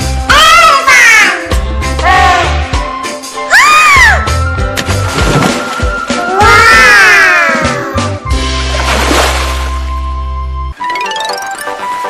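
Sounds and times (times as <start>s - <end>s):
background music: 0.0s - 12.0s
children exclaiming wow: 6.3s - 8.0s.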